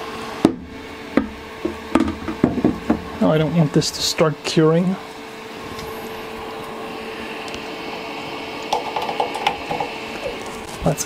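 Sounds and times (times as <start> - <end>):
fume extractor humming: 0.0 - 11.0
plastic cover knocking: 1.2 - 3.1.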